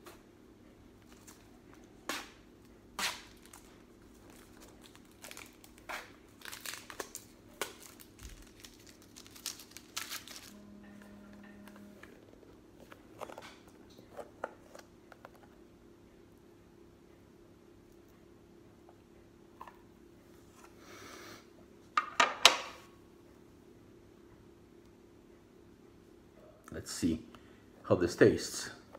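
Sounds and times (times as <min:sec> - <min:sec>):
plastic film crinkling: 0:03.1 - 0:10.6.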